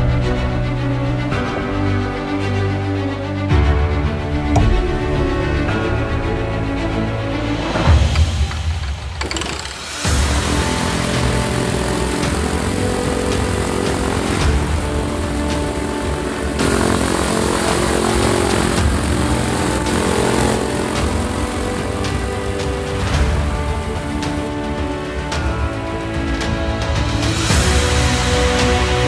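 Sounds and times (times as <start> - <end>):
engine and propeller running: 0.0 - 29.0
music: 0.0 - 29.0.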